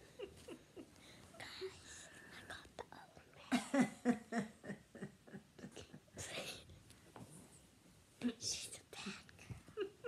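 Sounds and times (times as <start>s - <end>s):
person whispering: 1.3s - 3.5s, 8.2s - 9.4s.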